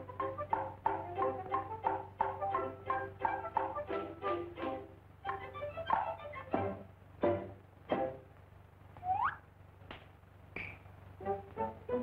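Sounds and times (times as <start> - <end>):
short rising squeak: 9.0 - 9.4.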